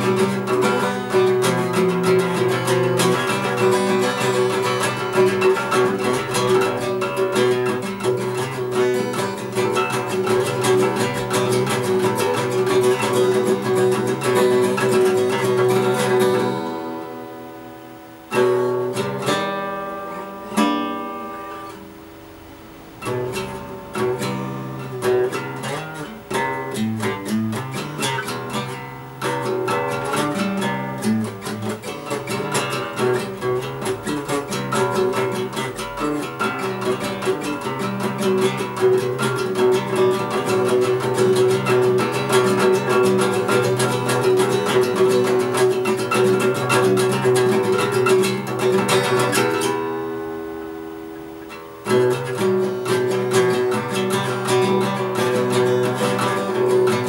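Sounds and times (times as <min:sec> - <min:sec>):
acoustic guitar strumming: 0:00.0 - 0:57.0
plucked guitar chords: 0:00.0 - 0:57.0.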